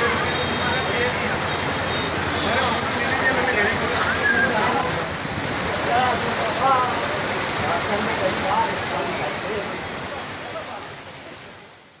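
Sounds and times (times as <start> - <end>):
heavy rain on street: 0.0 - 12.0.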